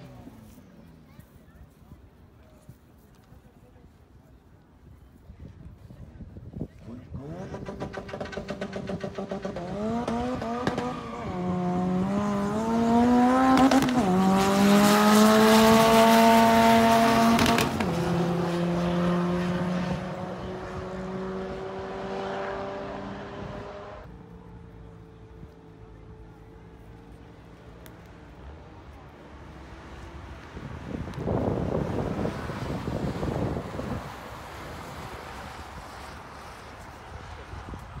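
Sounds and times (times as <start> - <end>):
car engine at full throttle: 6.7 - 38.0.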